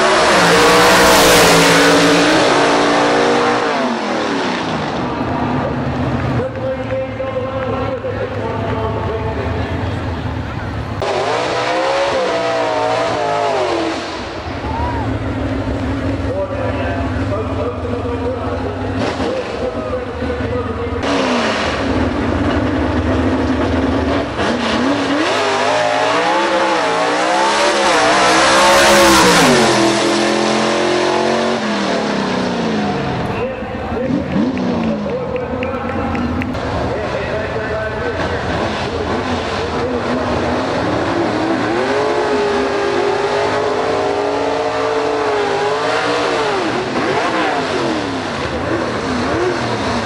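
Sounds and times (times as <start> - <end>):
race car engines revving: 0.0 - 50.0.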